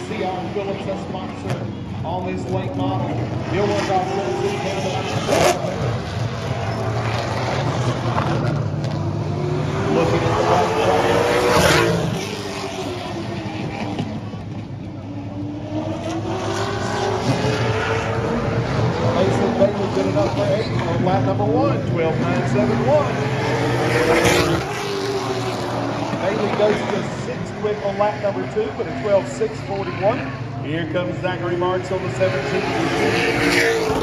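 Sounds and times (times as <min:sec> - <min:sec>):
race car engine passing: 0:00.0 - 0:34.0.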